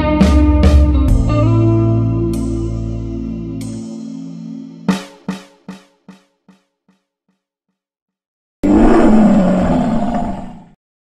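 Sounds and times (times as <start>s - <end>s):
big cat roaring: 8.6s - 10.8s.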